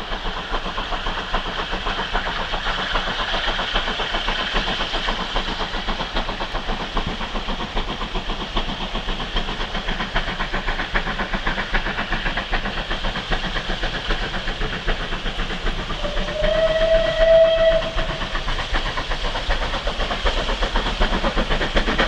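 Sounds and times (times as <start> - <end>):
steam locomotive exhaust beats: 0.0 - 22.0
steam whistle blast: 16.0 - 18.2.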